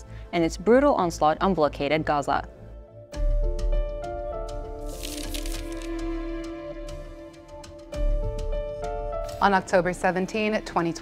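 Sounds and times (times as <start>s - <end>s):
sustained background music: 0.0s - 11.0s
pages flipping: 4.8s - 6.1s.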